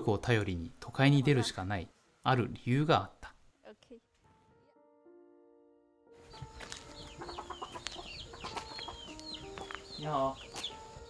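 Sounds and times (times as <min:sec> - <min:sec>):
small birds chirping: 0:06.2 - 0:11.0
chickens clucking: 0:06.3 - 0:11.0.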